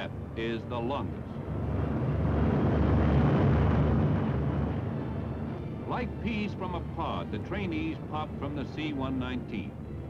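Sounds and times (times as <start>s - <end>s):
piston aircraft engines roaring: 0.0s - 10.0s.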